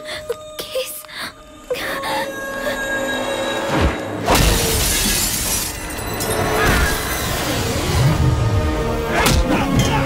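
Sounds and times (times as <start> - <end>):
glass shattering: 4.3 - 7.5.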